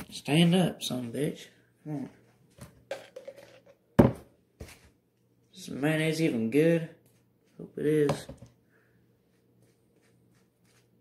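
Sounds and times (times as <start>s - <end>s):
sharp knock on wooden countertop: 4.0s - 4.3s.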